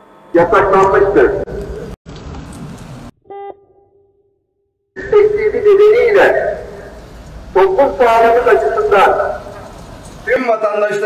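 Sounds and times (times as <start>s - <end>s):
short ringing beep: 3.3s - 4.1s
steady background noise: 5.0s - 11.0s.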